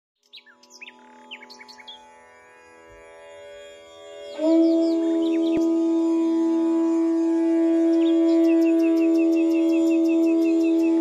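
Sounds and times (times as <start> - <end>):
soft musical drone: 0.3 - 11.0
birds chirping: 4.2 - 6.0, 6.8 - 11.0.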